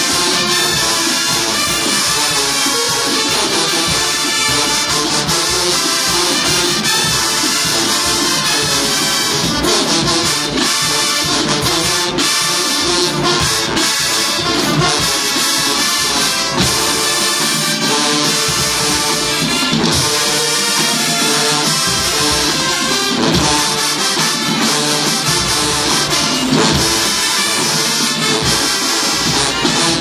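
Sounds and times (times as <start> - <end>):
marching band brass: 0.0 - 30.0
marching band drums: 0.0 - 30.0.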